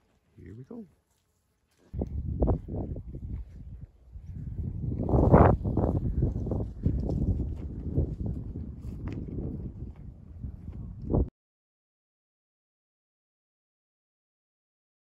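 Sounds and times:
footsteps on a trail: 0:00.0 - 0:11.3
wind gusting on microphone: 0:02.0 - 0:11.3.

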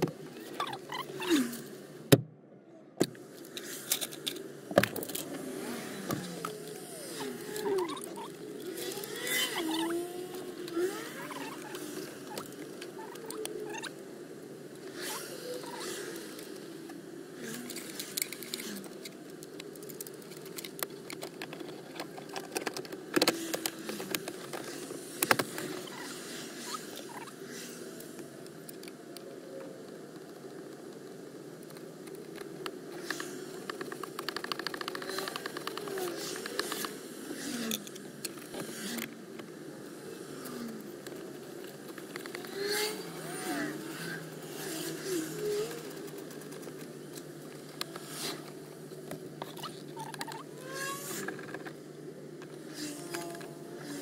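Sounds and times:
plastic squeaking on plastic: 0:00.4 - 0:01.6, 0:06.1 - 0:13.9, 0:49.4 - 0:51.7.

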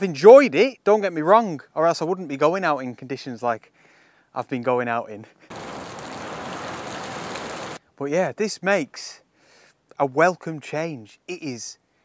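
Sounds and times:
driving rain: 0:05.5 - 0:07.8.

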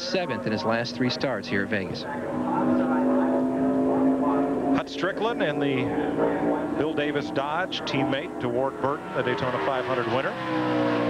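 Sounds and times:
race car engine: 0:00.0 - 0:11.0.

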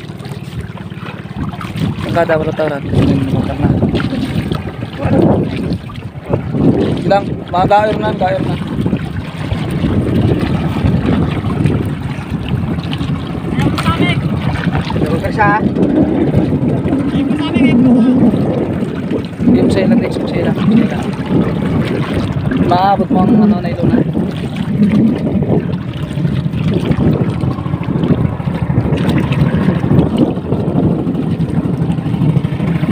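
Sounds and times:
wind buffeting microphone: 0:00.0 - 0:32.9.

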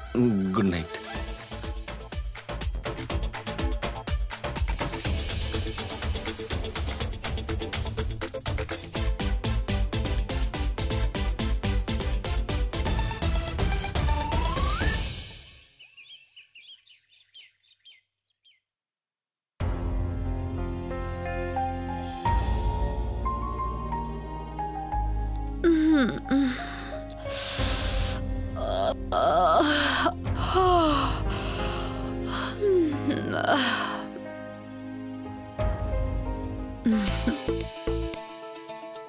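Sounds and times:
background music: 0:00.0 - 0:15.7, 0:19.6 - 0:39.0
birds chirping: 0:14.1 - 0:18.7
woman gasping and moaning: 0:25.6 - 0:34.2, 0:36.8 - 0:37.6.

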